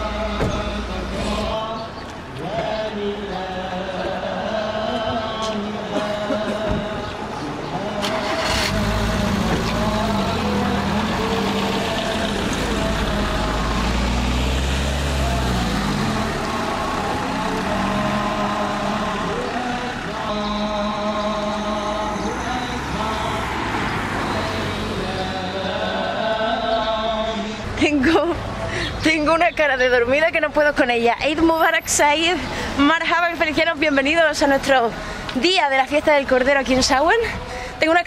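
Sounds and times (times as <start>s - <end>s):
voices chanting: 0.0s - 38.0s
small truck engine pulling away: 7.8s - 26.6s.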